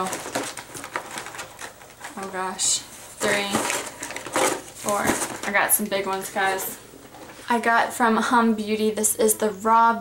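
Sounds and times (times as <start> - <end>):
packages clicking and rustling: 0.0 - 7.6
person speaking: 2.1 - 4.0, 4.7 - 10.0.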